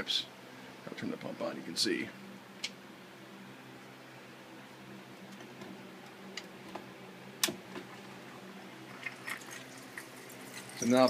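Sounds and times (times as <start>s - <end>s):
electric water pump humming: 0.0s - 11.0s.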